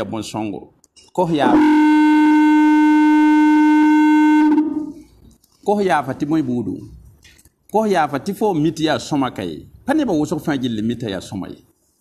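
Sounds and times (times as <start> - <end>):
person speaking: 0.0 - 1.7, 5.5 - 7.1.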